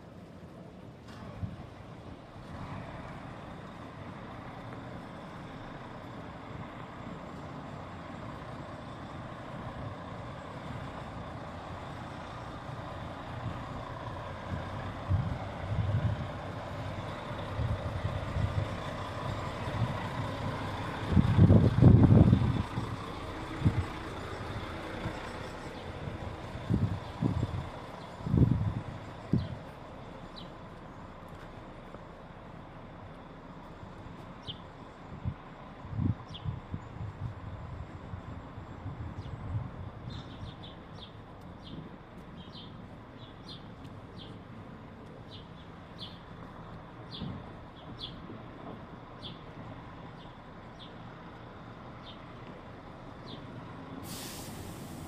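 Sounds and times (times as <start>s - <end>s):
city street traffic: 0.0s - 55.0s
diesel engine running: 0.1s - 55.0s
wind buffeting microphone: 14.4s - 19.0s, 19.6s - 25.2s, 25.9s - 29.6s, 35.1s - 40.6s.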